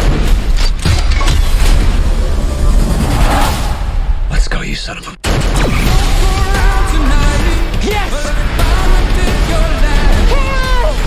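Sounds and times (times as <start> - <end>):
dramatic music: 0.0 - 4.5, 5.2 - 11.0
heavy rumble: 1.6 - 4.6.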